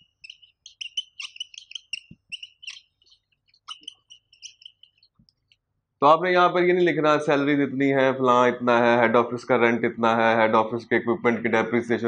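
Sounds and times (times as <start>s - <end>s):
marker squeaking on whiteboard: 0.0s - 5.8s.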